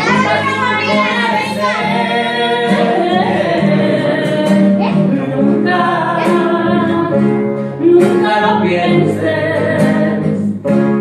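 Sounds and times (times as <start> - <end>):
woman singing: 0.0 - 10.5
acoustic guitar: 0.0 - 11.0.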